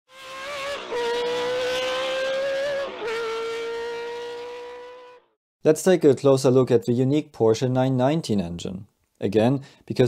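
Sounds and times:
racing car engine high revs: 0:00.1 - 0:05.2.

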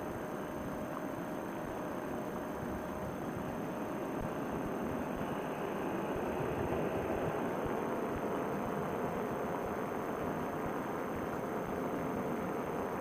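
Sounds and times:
engine and propeller drone: 0:00.0 - 0:13.0.

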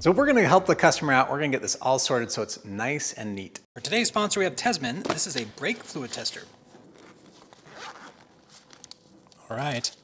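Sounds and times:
zipper being pulled open: 0:06.8 - 0:08.9.

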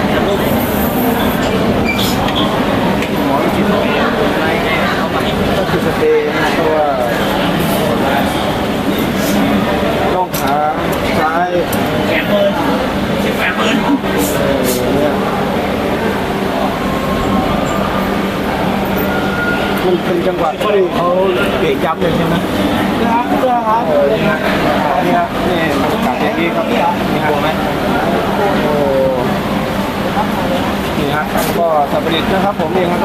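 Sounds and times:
crowded room din: 0:00.0 - 0:33.0.

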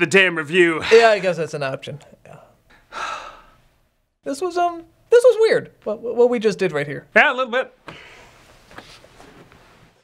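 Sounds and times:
long breathy sigh: 0:02.8 - 0:03.6.

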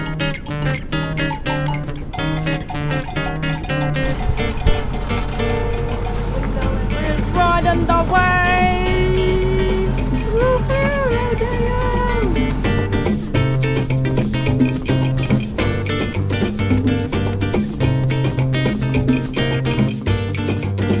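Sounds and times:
gliding melody line: 0:00.0 - 0:20.6
background music with steady beat: 0:00.0 - 0:21.0.

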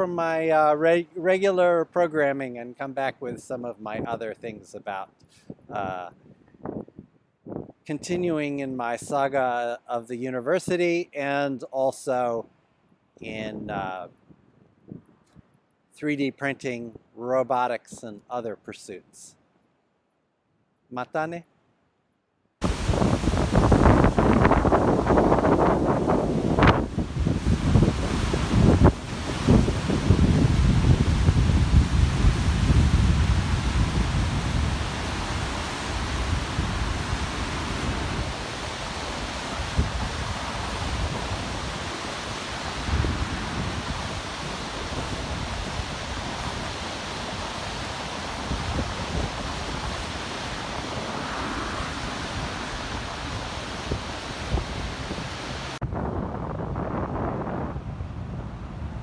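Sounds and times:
wind buffeting microphone: 0:05.4 - 0:07.8, 0:13.6 - 0:15.5, 0:22.6 - 0:59.0
river rushing: 0:22.6 - 0:55.8.

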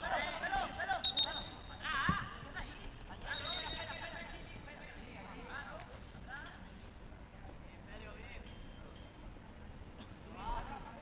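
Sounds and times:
short high-pitched whistles: 0:01.0 - 0:01.8.

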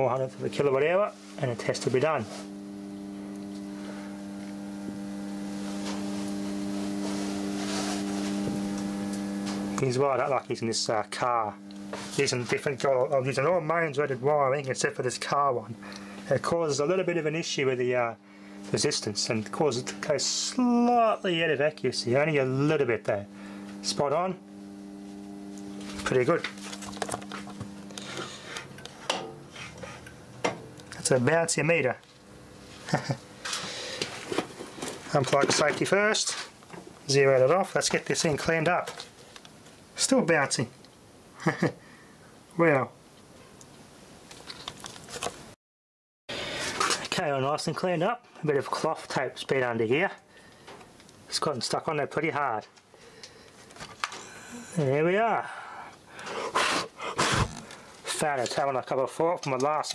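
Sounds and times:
electrical mains hum: 0:00.0 - 0:45.6, 0:46.3 - 0:59.9.

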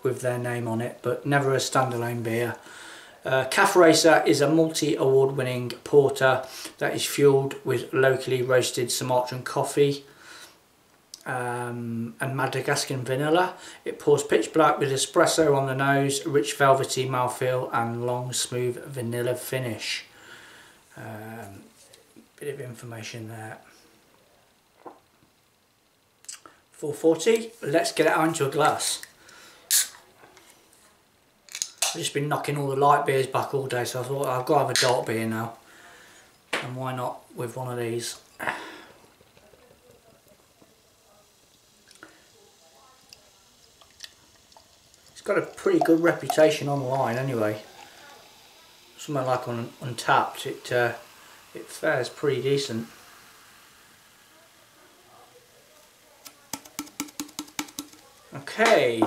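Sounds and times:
can ring-pull hiss: 0:28.3 - 0:30.6, 0:34.7 - 0:35.1, 0:38.2 - 0:59.0
beer pouring into glass: 0:37.4 - 0:59.0.

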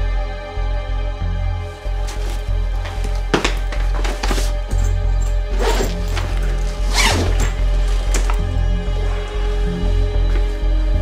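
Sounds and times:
background music with low bass: 0:00.0 - 0:11.0
zipper on fabric bag: 0:05.5 - 0:08.3.

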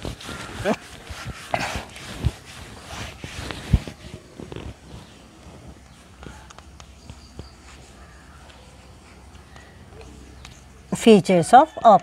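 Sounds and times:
duster rubbing on blackboard: 0:00.0 - 0:06.1.

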